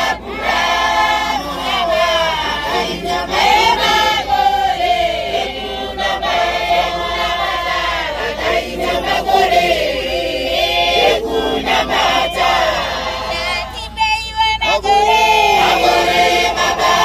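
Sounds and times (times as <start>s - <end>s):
congregation singing: 0.0s - 17.0s.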